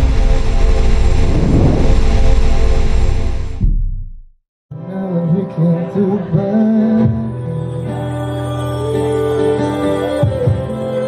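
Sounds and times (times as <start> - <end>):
deep rumbling drone: 0.0 - 4.4.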